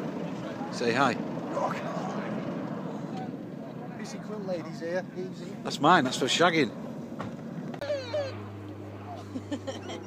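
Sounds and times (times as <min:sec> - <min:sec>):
aircraft flying overhead: 0:00.0 - 0:10.0.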